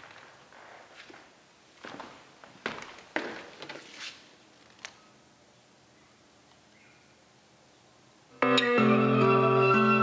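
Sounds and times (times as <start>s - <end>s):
man's footsteps: 0.0s - 5.0s.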